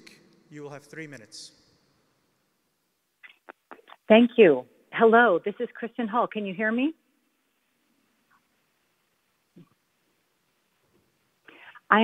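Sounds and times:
woman speaking: 3.7 - 7.0, 11.7 - 12.0.

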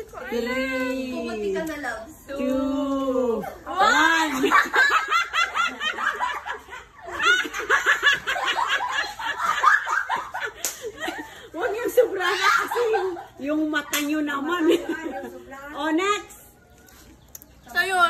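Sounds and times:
girls laughing: 3.1 - 15.6.

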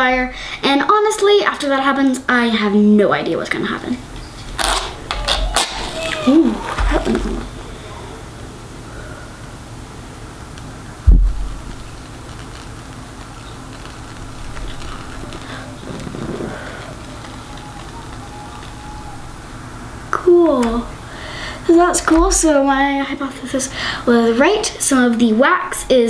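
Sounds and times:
sudden low thump: 11.1 - 11.5.

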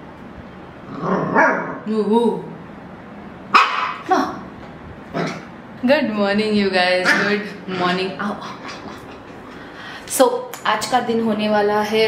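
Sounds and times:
small dog barking: 3.5 - 4.1.

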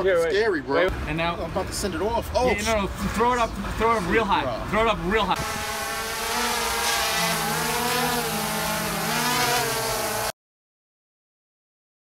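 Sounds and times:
drone propellers buzzing: 5.4 - 10.3.

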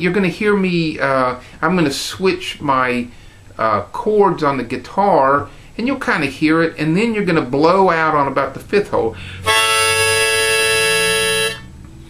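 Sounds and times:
harmonica long held note: 9.3 - 11.8.

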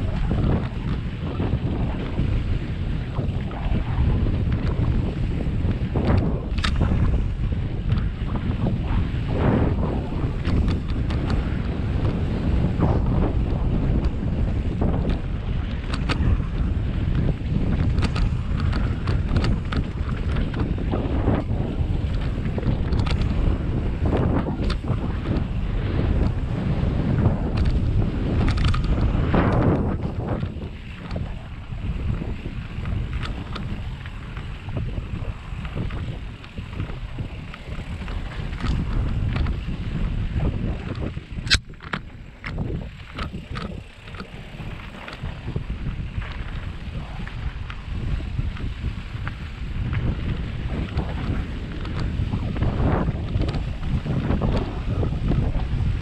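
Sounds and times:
bicycle tyres rolling on dirt: 0.0 - 56.0
bike clicks and rattles: 0.0 - 56.0
wind buffeting microphone: 0.0 - 56.0.

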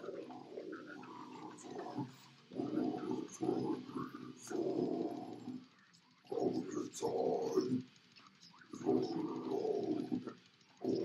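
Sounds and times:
guttural growl vocals: 0.0 - 5.6, 6.3 - 7.8, 8.7 - 11.0.

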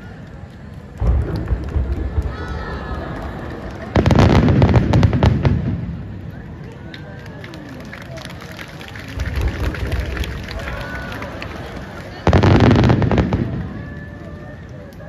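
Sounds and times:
firework crackling: 0.3 - 7.0, 8.2 - 15.0.

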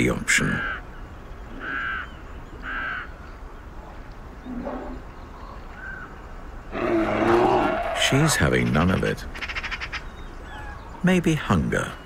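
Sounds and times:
crow cawing: 1.6 - 3.2.

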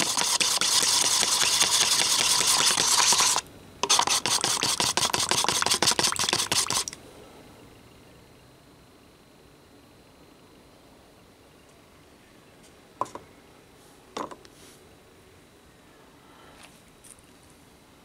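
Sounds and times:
stick scraping paper cup: 0.0 - 7.0.

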